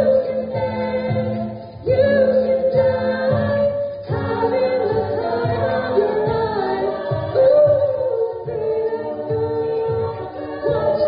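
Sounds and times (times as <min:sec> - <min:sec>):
vocal percussion beat: 0:00.0 - 0:11.0
women singing a cappella: 0:00.0 - 0:11.0.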